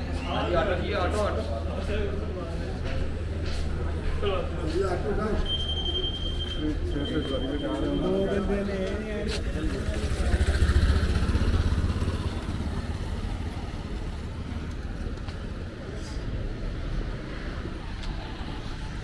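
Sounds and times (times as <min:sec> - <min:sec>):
outdoor traffic hum: 0:00.0 - 0:19.0
vehicle engine passing by: 0:09.3 - 0:19.0.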